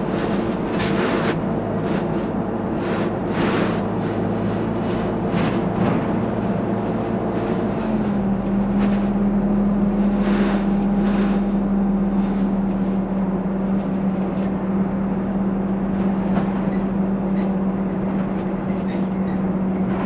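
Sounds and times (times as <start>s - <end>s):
bus engine drone: 0.0s - 20.0s.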